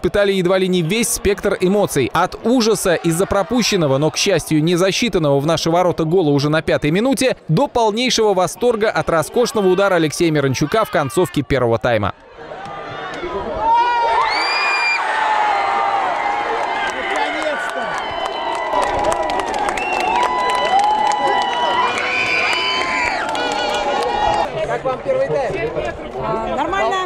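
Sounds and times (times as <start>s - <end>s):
crowd shouting and whooping: 0.6s - 5.0s, 12.3s - 24.5s
hand-clapping: 16.6s - 24.5s.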